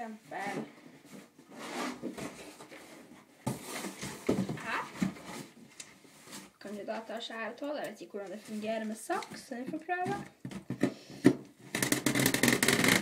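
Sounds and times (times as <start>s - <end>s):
knife cutting cardboard: 1.5s - 2.7s.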